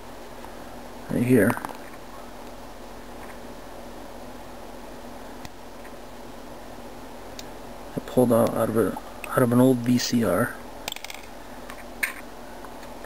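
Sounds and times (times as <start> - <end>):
recording noise hiss: 0.0 - 13.0.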